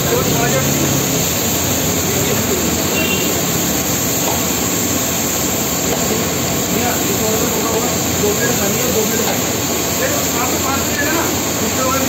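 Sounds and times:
people talking: 0.0 - 4.5, 5.7 - 12.0
busy street food stall noise: 0.0 - 12.0.

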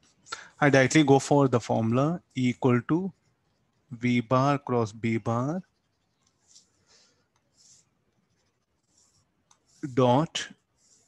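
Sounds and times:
stylus scratching on tablet screen: 1.8 - 11.0.

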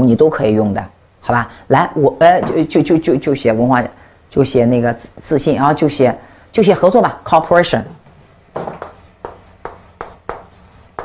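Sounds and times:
chalk writing on blackboard: 8.6 - 11.0.

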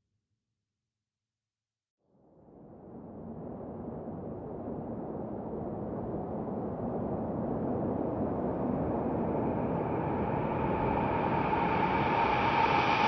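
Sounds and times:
rushing noise swell: 9.4 - 13.0.

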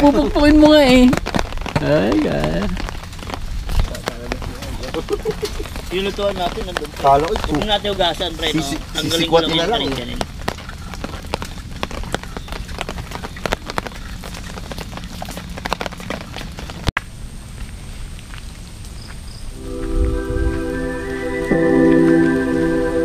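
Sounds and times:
rain pattering on a tarp: 0.0 - 23.0
slow ambient music: 19.6 - 23.0.

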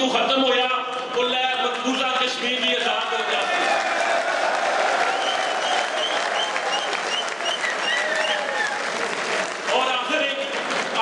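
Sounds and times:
audience applauding: 2.8 - 11.0.

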